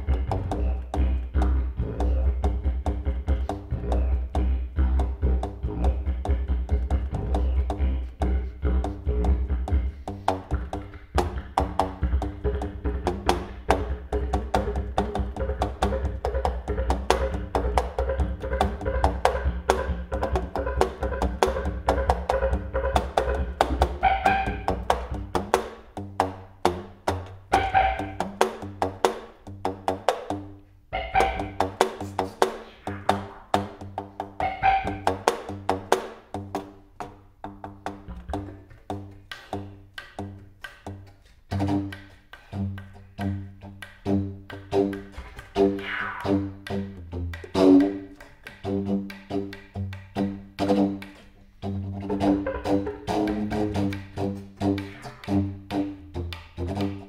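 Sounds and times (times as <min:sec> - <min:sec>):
contrabass flute: 0:00.0 - 0:25.5, 0:27.5 - 0:28.8, 0:31.0 - 0:33.8, 0:34.4 - 0:35.6, 0:41.5 - 0:57.0
didgeridoo drone: 0:00.0 - 0:25.6, 0:27.5 - 0:29.0, 0:31.0 - 0:35.7, 0:44.0 - 0:57.0
percussive clicks: 0:00.1 - 0:30.5, 0:31.2 - 0:51.4.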